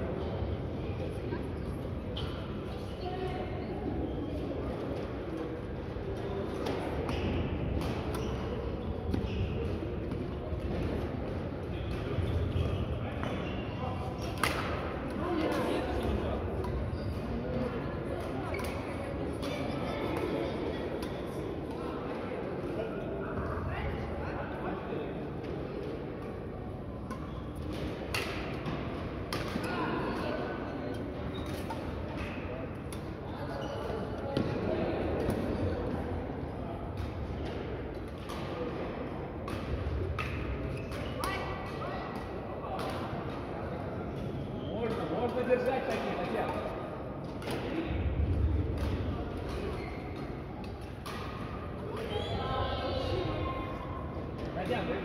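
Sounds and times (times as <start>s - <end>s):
murmur of players' voices: 0.0s - 55.0s
rackets hitting shuttlecocks: 14.2s - 15.7s, 27.1s - 29.7s, 47.4s - 52.1s.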